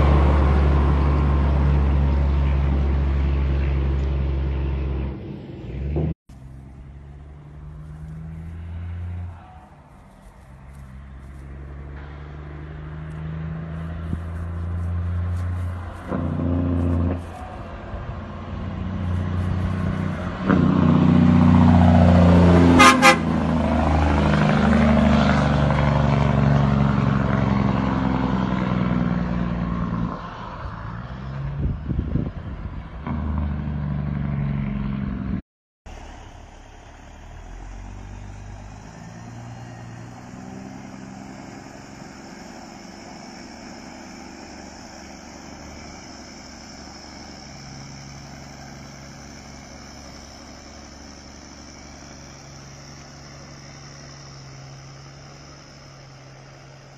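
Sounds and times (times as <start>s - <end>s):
diesel truck engine passing: 0.0s - 56.9s
truck running quietly: 0.0s - 56.9s
truck horn blast: 13.9s - 18.1s, 18.8s - 25.1s.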